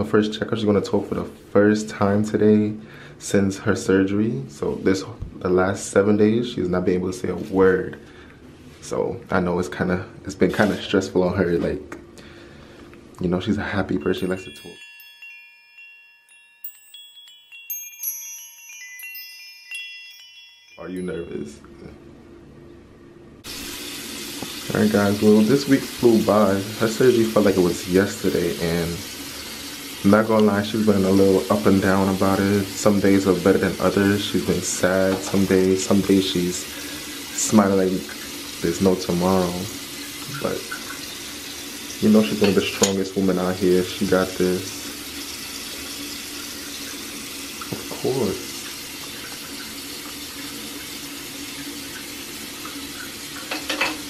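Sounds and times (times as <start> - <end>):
shimmering bell-like chimes: 14.0 - 21.7
running water hiss: 23.4 - 54.0.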